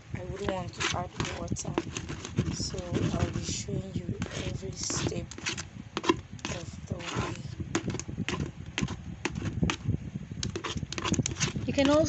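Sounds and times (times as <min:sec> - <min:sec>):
thick liquid sloshing: 0:00.2 - 0:09.9
stick knocking against bucket: 0:04.2 - 0:09.8.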